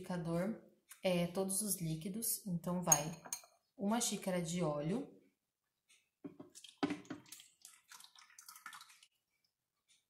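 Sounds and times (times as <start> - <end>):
oil splashing into blender jar: 6.3 - 9.1.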